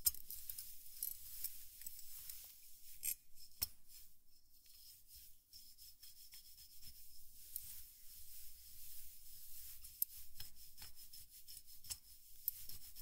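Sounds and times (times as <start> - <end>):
rubbing and scratching on microphone: 0.3 - 13.0.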